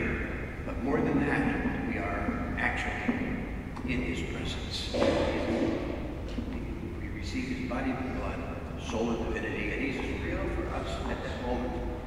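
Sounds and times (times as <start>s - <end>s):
person speaking with echo: 0.0s - 12.0s.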